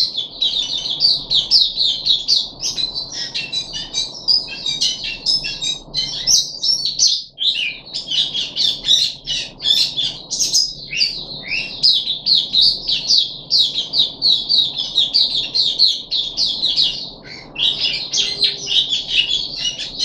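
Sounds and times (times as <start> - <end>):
bird chirping rapidly: 0.0 - 20.0.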